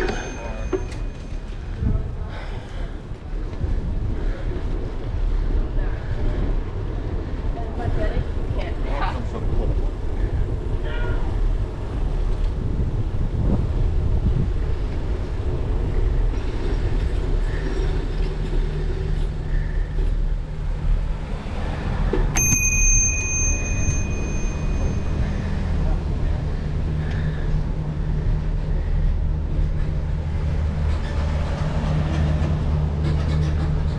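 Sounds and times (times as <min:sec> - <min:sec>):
bicycle bell ringing: 0:00.0 - 0:01.4, 0:22.3 - 0:25.6
low rumble of bike riding: 0:00.0 - 0:33.9.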